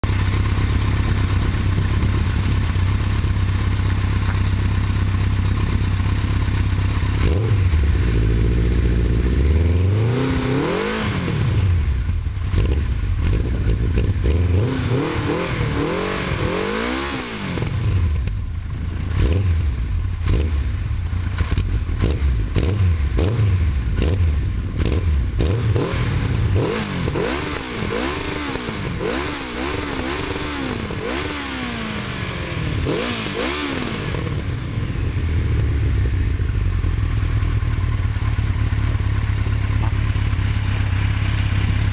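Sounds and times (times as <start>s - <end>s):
motorcycle engine revving: 0.0s - 41.9s.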